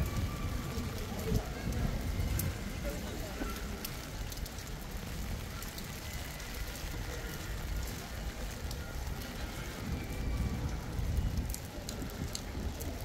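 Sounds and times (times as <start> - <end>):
rain on wet paving stones: 0.0 - 13.0.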